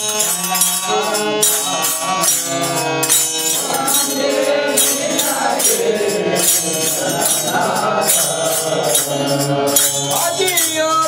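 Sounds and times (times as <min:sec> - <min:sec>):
hand cymbals struck: 0:00.0 - 0:11.0
men singing together: 0:00.0 - 0:11.0.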